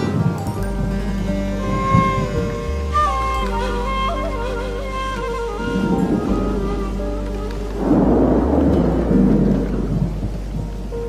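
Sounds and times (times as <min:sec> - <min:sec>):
low background music: 0:00.0 - 0:11.0
thunder rumbling: 0:00.0 - 0:11.0.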